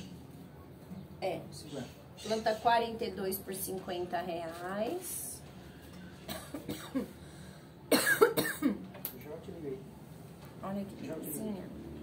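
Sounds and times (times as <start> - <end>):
person coughing: 6.3 - 7.2, 7.9 - 8.8.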